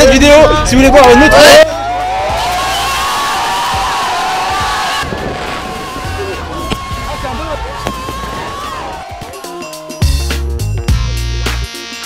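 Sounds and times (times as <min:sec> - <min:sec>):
children cheering and shouting: 0:00.0 - 0:10.0.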